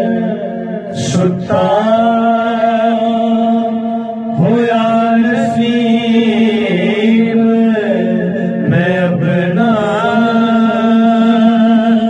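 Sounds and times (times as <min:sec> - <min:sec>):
man singing into a microphone: 0:00.0 - 0:12.0
steady low drone: 0:00.0 - 0:12.0.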